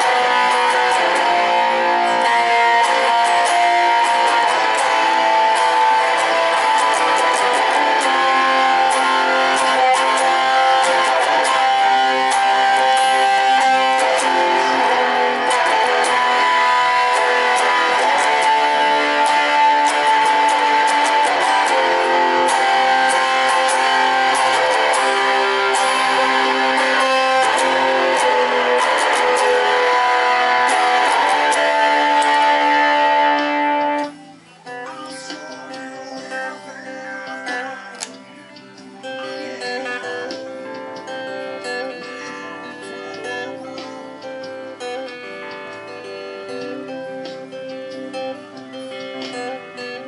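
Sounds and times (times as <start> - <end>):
electric guitar picked notes: 0.0 - 50.0
electric guitar strummed chords: 0.0 - 50.0.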